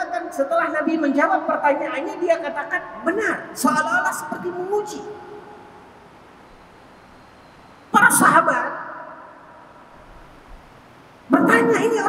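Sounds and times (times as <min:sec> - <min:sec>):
man talking: 0:00.0 - 0:05.2, 0:08.0 - 0:08.8
faint background hiss: 0:00.0 - 0:12.0.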